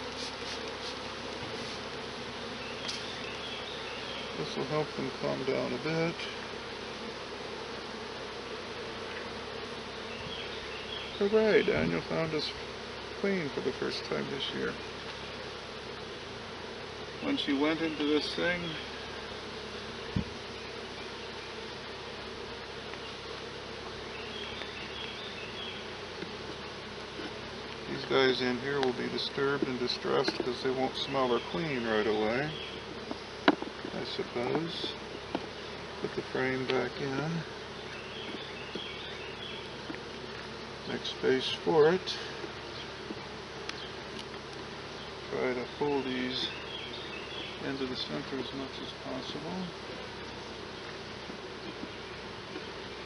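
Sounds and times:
honey bees buzzing: 0:00.0 - 0:53.0.

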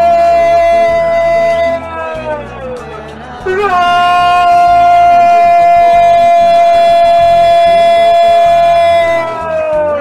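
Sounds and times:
commentator shouting goal: 0:03.5 - 0:09.5.

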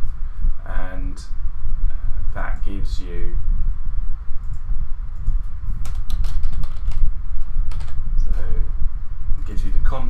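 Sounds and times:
low rumble: 0:00.0 - 0:10.0
keyboard typing: 0:05.2 - 0:07.0, 0:07.7 - 0:08.0.

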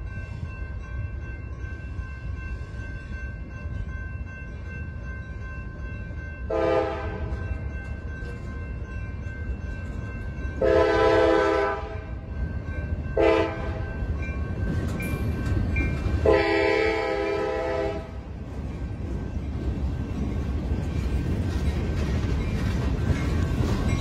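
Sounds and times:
freight train horn blasts: 0:06.5 - 0:07.4, 0:10.6 - 0:12.2, 0:13.2 - 0:13.9, 0:16.2 - 0:18.2
boxcars rumbling on track: 0:06.8 - 0:24.0.

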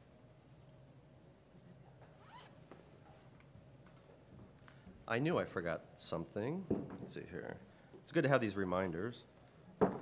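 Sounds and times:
zip: 0:02.2 - 0:02.6.

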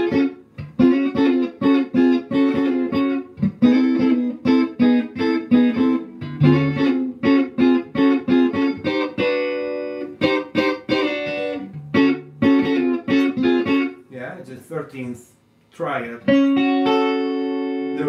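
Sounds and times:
clean electric guitar swing shuffle: 0:00.0 - 0:14.1, 0:16.2 - 0:18.0.

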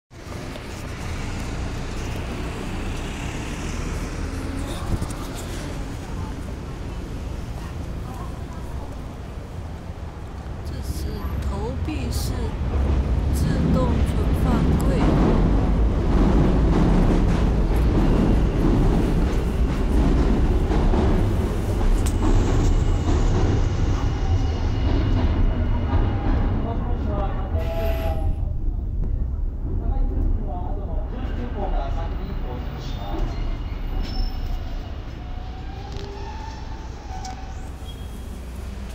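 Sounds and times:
low traffic rumble: 0:00.1 - 0:38.9.

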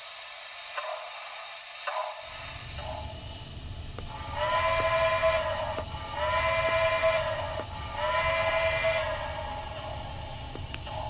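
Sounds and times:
model train steam whistle blasts: 0:04.1 - 0:11.0.

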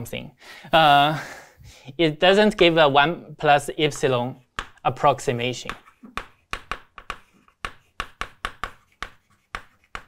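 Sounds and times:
chalk writing on blackboard: 0:05.7 - 0:10.0.

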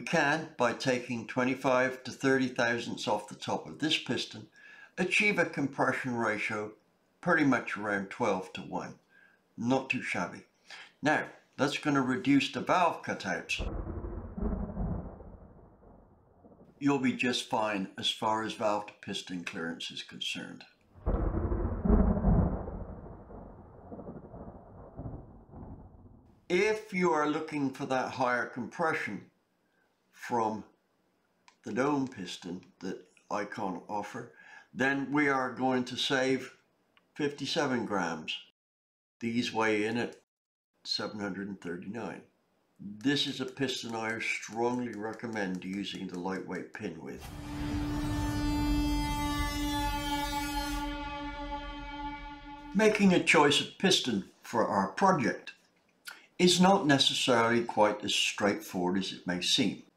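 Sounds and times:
deep noisy rumble: 0:13.6 - 0:16.6, 0:21.0 - 0:26.2
synthesized tone with overtones: 0:47.2 - 0:53.0.

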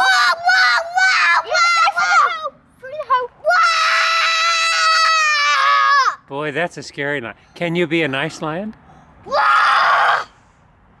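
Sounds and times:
child screaming: 0:00.0 - 0:06.2, 0:09.2 - 0:10.4.

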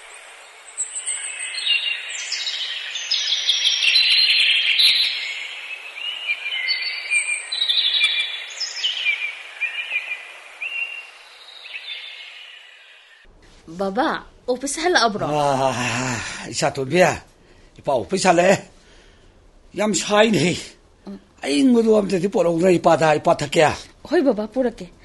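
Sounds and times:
small birds chirping: 0:00.0 - 0:13.3.

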